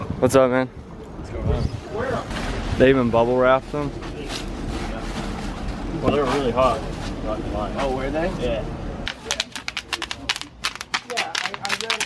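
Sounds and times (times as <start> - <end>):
bubble wrap rustling and crinkling: 9.1 - 12.0.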